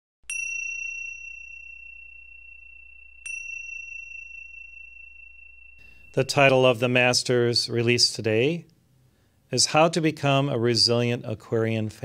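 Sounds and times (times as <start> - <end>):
small high-pitched bell ringing: 0.3 - 7.5.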